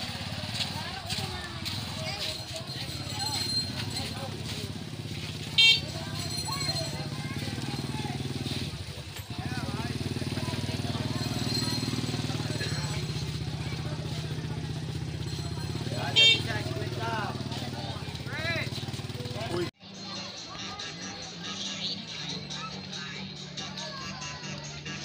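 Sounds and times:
motorcycle engine running: 0.0 - 19.8
people talking: 0.0 - 25.0.

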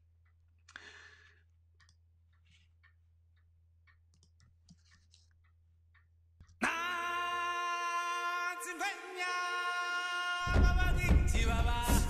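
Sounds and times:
computer mouse clicks: 1.8 - 3.0, 3.8 - 6.6.

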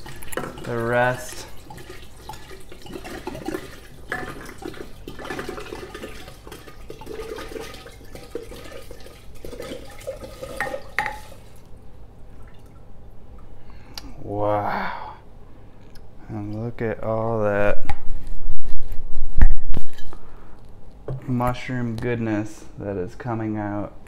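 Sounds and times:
liquid pouring into glass jar: 0.0 - 11.7.

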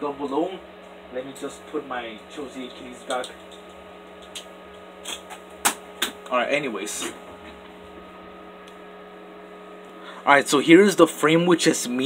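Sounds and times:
low electrical hum: 0.0 - 12.0
sharp click: 3.0 - 6.4.

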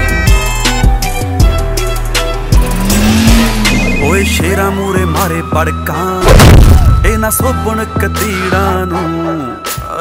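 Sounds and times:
background music: 0.0 - 10.0
car engine revving: 1.8 - 5.1.

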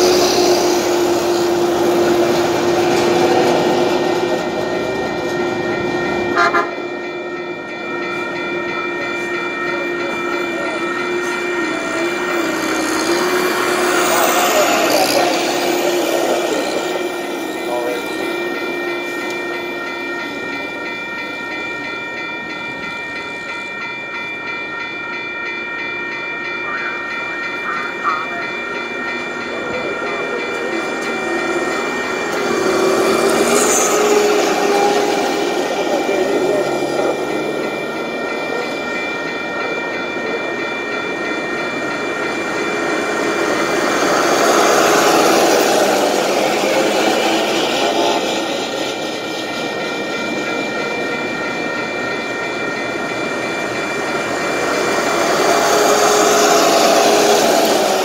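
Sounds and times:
high-pitched ringing tones: 0.0 - 58.0
rail vehicle running on track: 0.0 - 58.0.

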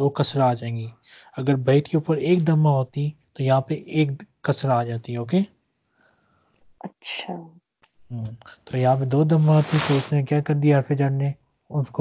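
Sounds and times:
person speaking quietly: 0.0 - 5.4, 8.1 - 12.0.

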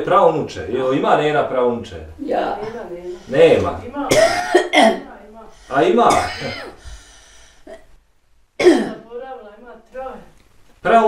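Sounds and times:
elderly woman speaking: 2.2 - 4.2.

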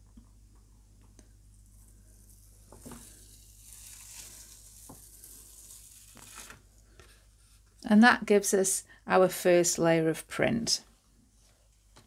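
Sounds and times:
card peeling off tacky paint: 2.1 - 6.6.

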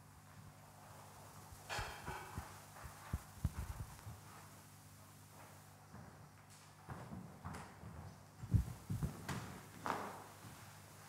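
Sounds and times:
steady low hum: 0.0 - 11.0
footsteps on wooden stage: 2.1 - 4.5, 6.9 - 10.6.

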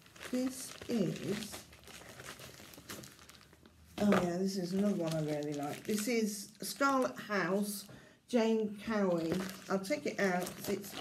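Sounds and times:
plastic sleeve crinkling: 0.0 - 7.8, 8.9 - 11.0.

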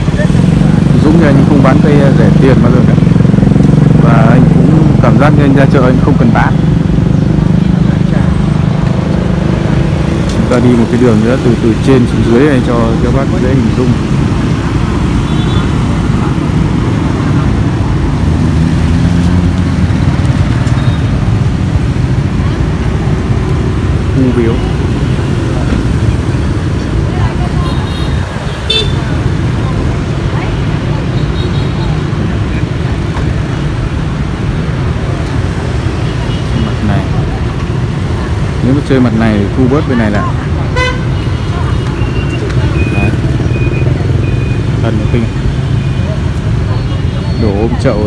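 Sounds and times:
street traffic rumble: 0.0 - 48.0.

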